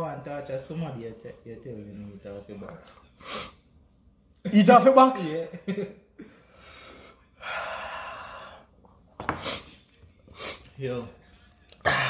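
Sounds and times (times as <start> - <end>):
man breathing hard: 6.2 - 8.7.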